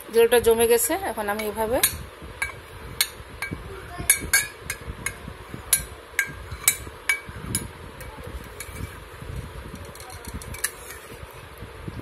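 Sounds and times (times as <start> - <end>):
steady fan hum: 0.0 - 12.0.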